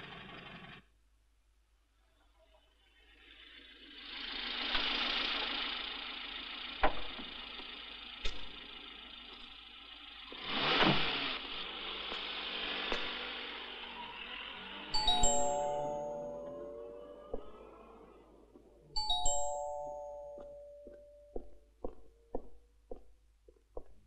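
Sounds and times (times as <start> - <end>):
cars passing: 2.6 - 22.2
sharp knocks: 6.8 - 7.3.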